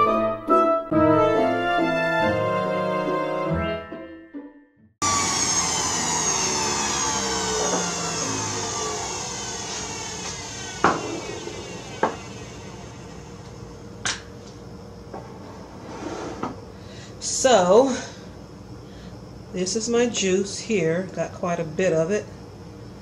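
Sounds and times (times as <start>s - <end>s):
juicer motor winding down: 5.0s - 13.8s.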